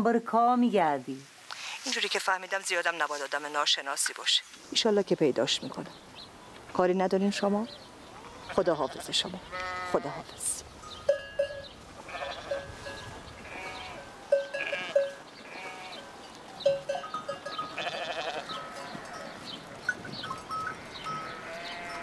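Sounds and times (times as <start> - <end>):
sheep bleating: 8.2 - 10.4, 12.0 - 12.7, 13.4 - 16.3, 17.6 - 19.4, 20.7 - 22.0.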